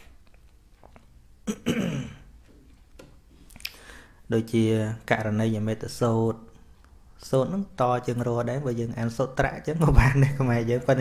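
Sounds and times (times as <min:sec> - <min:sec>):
person clearing throat: 0:01.4 - 0:02.3.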